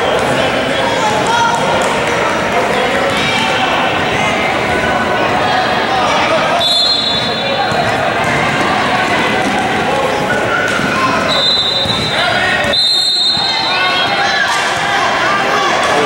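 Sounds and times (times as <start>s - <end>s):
people calling out and talking: 0.0s - 16.0s.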